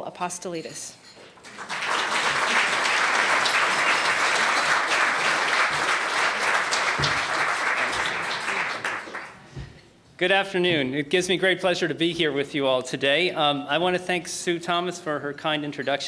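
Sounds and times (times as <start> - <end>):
audience applauding: 1.4 - 9.5.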